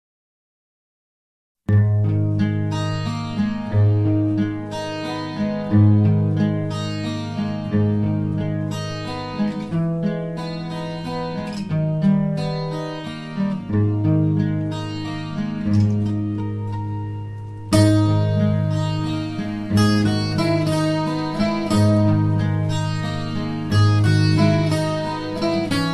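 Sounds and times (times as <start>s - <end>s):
acoustic guitar plucked chords: 1.7s - 25.9s.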